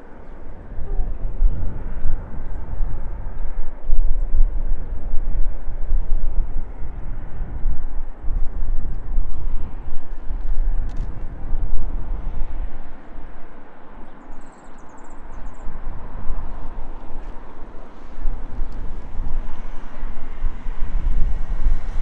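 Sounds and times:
wind noise on microphone: 0:00.0 - 0:22.0.

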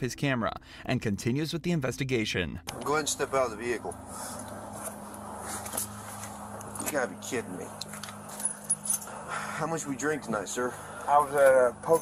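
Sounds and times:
man speaking: 0:00.0 - 0:04.0, 0:09.6 - 0:12.0
steady low hum: 0:00.0 - 0:12.0.

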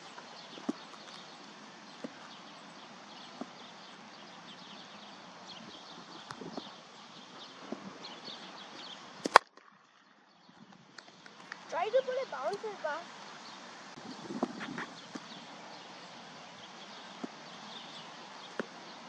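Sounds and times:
background hiss: 0:10.9 - 0:19.0.

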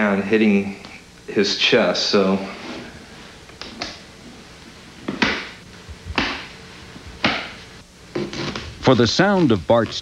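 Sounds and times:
hand slapping chest: 0:06.2 - 0:06.5, 0:07.2 - 0:07.6.

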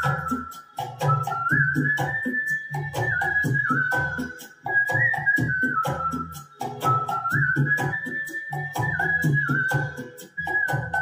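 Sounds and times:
karaoke backing track: 0:00.0 - 0:11.0
man whistling a melody: 0:00.0 - 0:11.0.

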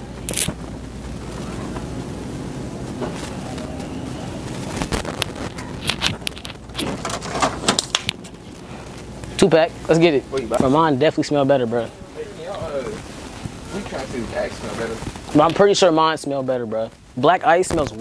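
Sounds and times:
low rumbling hum: 0:00.0 - 0:15.4
clicks and rustles of handling: 0:04.7 - 0:09.4.

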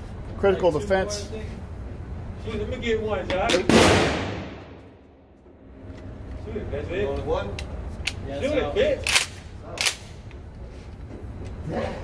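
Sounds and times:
gunshot echo in concrete room: 0:03.7 - 0:05.0.

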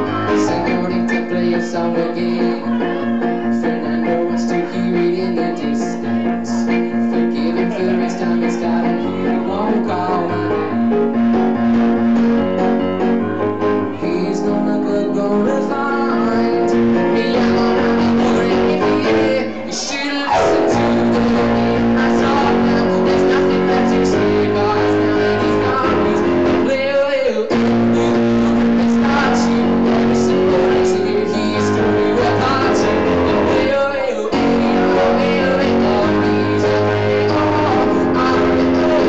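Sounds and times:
keyboard piano chords: 0:00.0 - 0:39.0.

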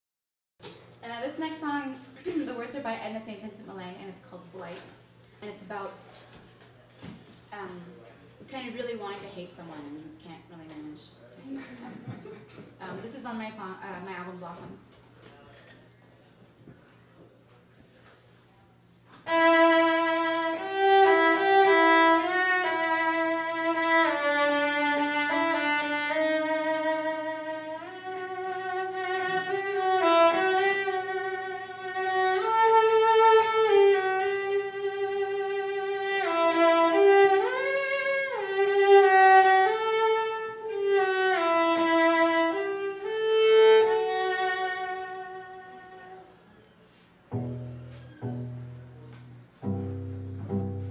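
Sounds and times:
bowed cello sustained notes: 0:47.3 - 0:50.9.

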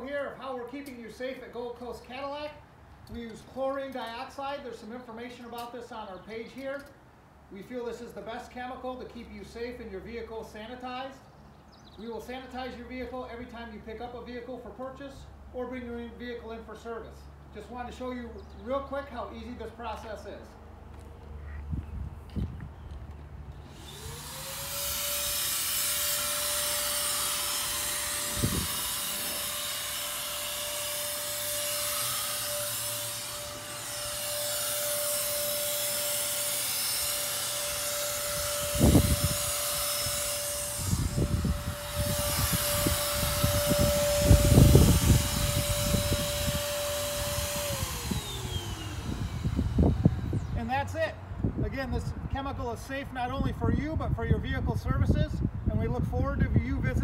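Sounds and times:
electric fogger motor whining: 0:23.6 - 0:50.6.

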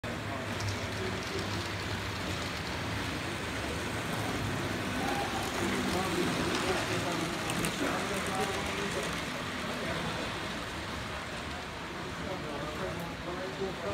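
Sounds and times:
model trains rumbling on track: 0:00.0 - 0:13.9.

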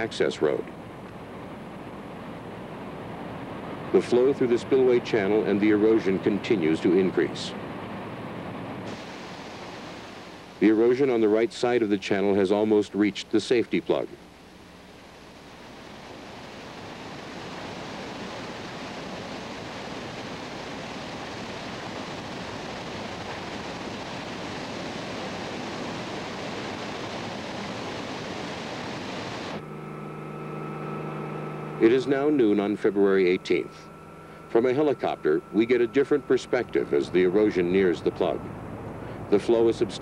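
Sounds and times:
helicopter droning hum: 0:00.0 - 0:40.0
floodwater rushing: 0:15.5 - 0:29.6.

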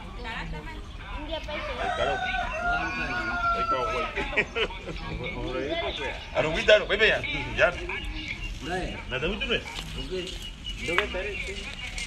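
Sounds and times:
rooster crowing: 0:01.6 - 0:04.2.

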